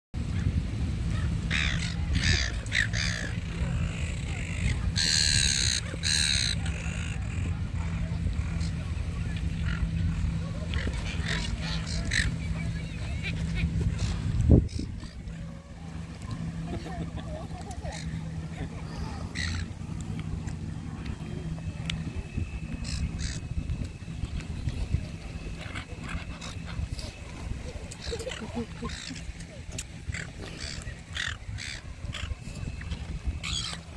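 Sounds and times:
gulls squawking: 0.2s - 33.9s
steady low rumble: 0.2s - 33.9s.

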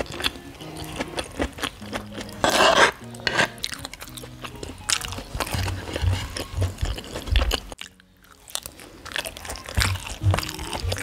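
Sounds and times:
chewing and biting food: 0.0s - 11.0s.

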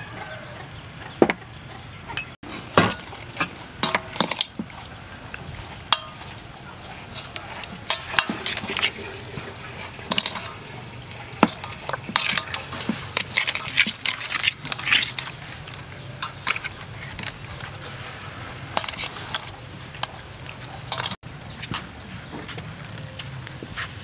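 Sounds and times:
wet squishing of chicken skin: 2.8s - 21.2s.

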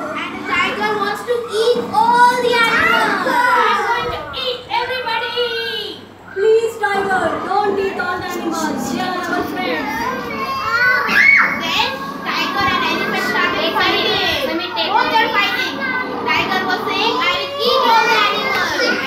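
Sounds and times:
children chattering and calling out: 0.0s - 19.0s.

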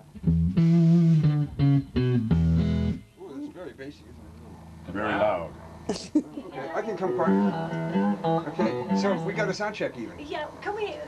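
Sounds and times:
electric guitar and bass notes: 0.0s - 3.2s, 6.7s - 10.0s.

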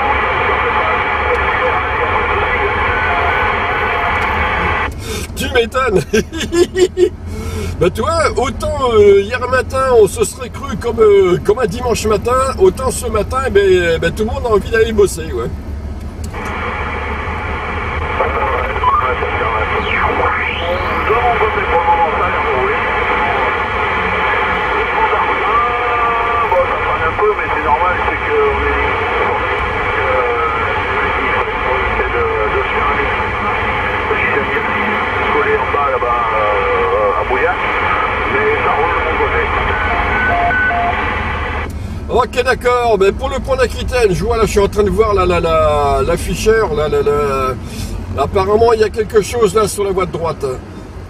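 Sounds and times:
radio voices: 0.0s - 15.6s, 16.3s - 50.7s
car rumble: 0.0s - 51.0s
radio interference whistles: 18.3s - 21.2s.

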